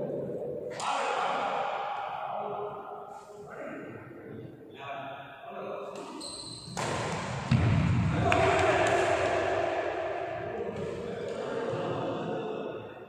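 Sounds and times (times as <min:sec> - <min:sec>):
players' voices: 0:00.0 - 0:06.2, 0:06.8 - 0:13.0
racket hitting shuttlecock: 0:05.9 - 0:11.4.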